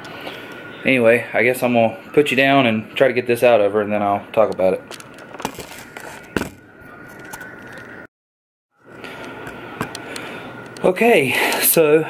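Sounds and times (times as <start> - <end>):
camera rustling and knocking: 4.9 - 7.9.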